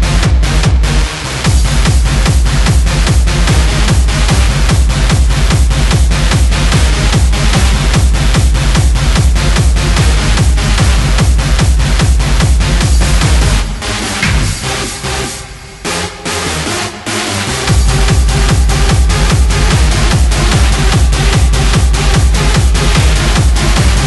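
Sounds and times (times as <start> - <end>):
hardstyle dance music: 0.0 - 24.0.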